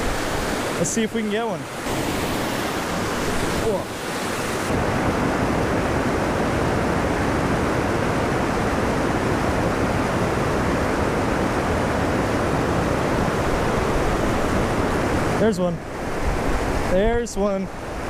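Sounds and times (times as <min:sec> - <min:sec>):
creek water rushing over spillway: 0:00.0 - 0:18.0.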